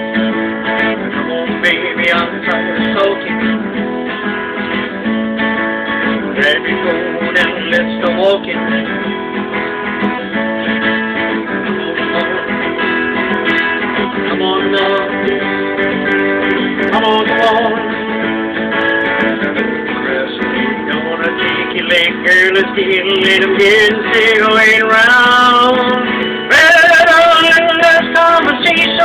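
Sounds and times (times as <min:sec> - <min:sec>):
acoustic guitar strumming: 0:00.0 - 0:29.0.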